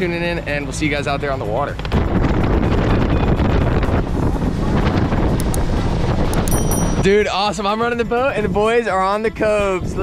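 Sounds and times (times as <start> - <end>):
water rushing: 0.0 - 8.0
boat running noise: 0.0 - 10.0
wind buffeting microphone: 0.0 - 10.0.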